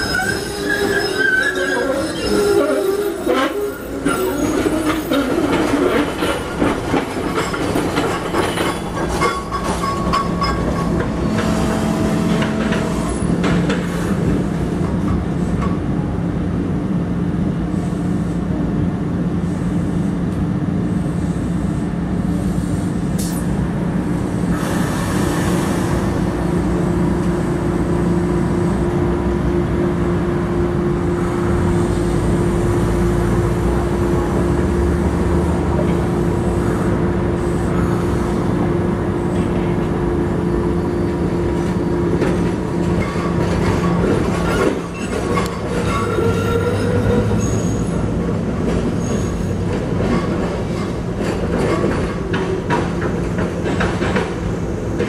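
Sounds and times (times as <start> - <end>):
wheel squeals: 0.0 - 6.1, 43.0 - 48.1, 48.9 - 49.6
wheel and rail noise: 0.0 - 16.2, 31.4 - 55.0
wheels clicking over rail joints: 4.4 - 11.5.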